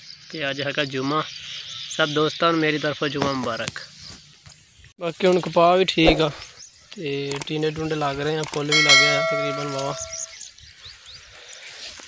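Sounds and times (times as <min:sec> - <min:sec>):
bell ding: 0:08.7 - 0:10.4
bird chirps: 0:08.7 - 0:11.1.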